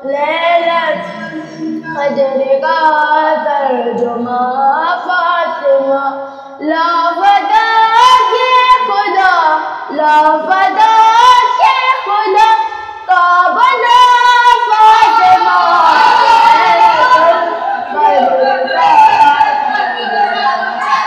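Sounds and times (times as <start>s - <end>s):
boy singing solo: 0.0s - 20.9s.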